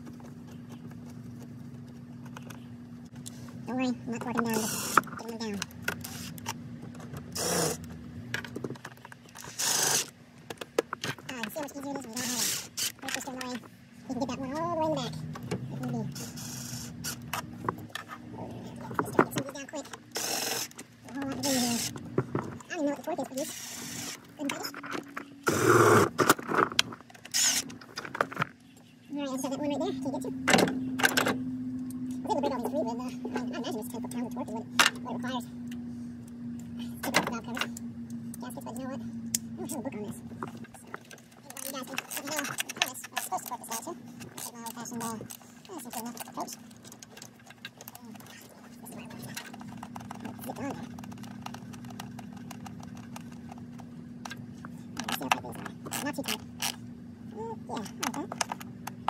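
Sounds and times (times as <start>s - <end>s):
steady hum: 0.0s - 59.0s
cordless power tool bursts: 7.3s - 7.8s, 9.5s - 10.1s, 20.1s - 20.8s, 23.4s - 24.2s, 25.5s - 26.4s, 27.3s - 27.7s.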